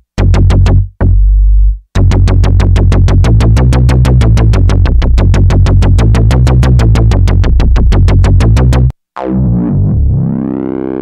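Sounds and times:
synthesizer bass notes: 0.0s - 11.0s.

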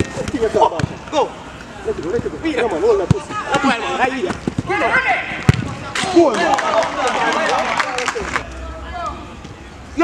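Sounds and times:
football being kicked: 0.0s - 1.0s, 5.4s - 5.8s
players shouting: 0.1s - 10.0s.

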